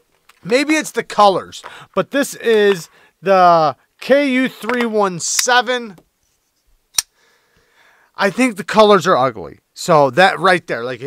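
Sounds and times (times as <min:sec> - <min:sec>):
sharp click: 0:06.9 - 0:07.1.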